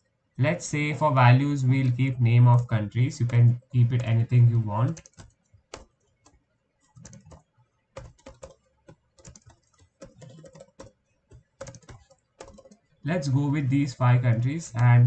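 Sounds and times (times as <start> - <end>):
typing on computer keyboard: 2.5 - 13.0.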